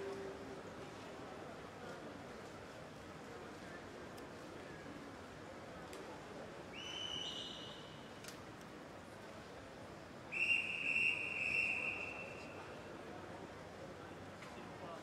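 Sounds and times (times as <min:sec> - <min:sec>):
crowd murmur: 0:00.0 - 0:05.2
referee whistle blasts: 0:10.3 - 0:12.4.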